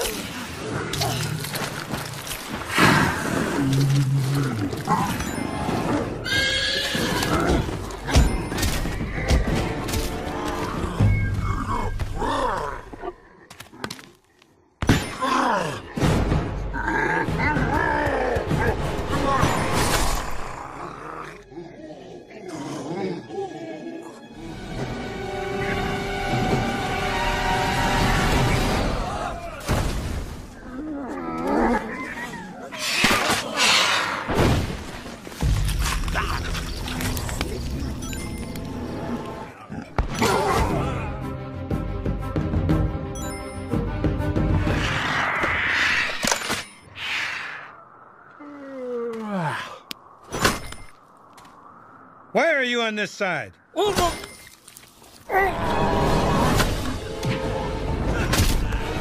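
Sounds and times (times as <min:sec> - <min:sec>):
horse whinnying: 0:06.2 - 0:07.6.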